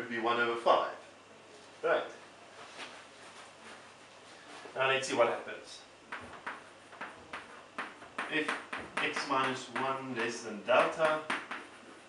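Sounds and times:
chalk tapping on blackboard: 6.1s - 12.0s.

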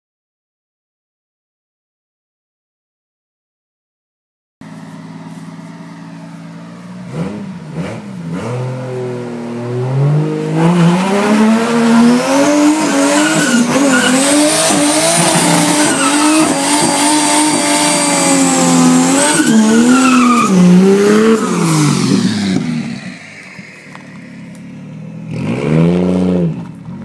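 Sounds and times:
car engine revving: 4.6s - 27.0s
tyres squealing: 12.1s - 17.1s, 18.0s - 21.9s.

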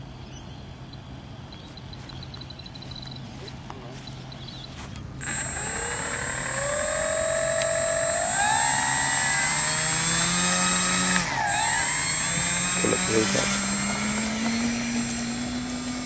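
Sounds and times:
electric motor and propeller whine: 1.6s - 16.0s.

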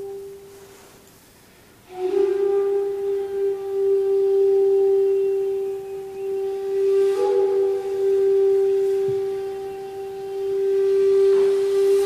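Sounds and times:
bamboo flute long low note: 0.0s - 1.1s, 1.8s - 12.0s.

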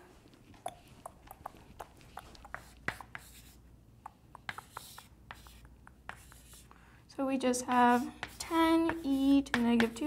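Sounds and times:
chalk tapping and scratching on chalkboard: 0.6s - 6.8s, 7.6s - 10.0s.

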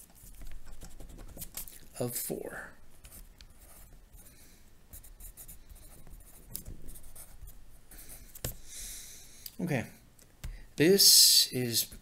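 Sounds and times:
pen scratching on paper: 0.0s - 1.7s, 3.0s - 4.3s, 4.9s - 8.6s.

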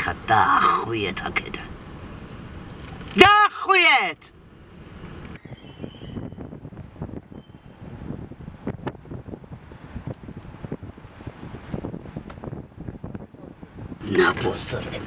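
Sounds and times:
street ambience: 0.0s - 15.0s
high-pitched squeals: 5.4s - 6.4s, 7.1s - 8.0s.

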